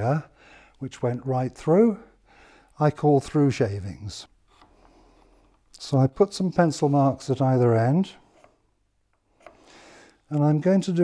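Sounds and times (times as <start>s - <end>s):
pencil scratching on wood: 8.2s - 8.6s.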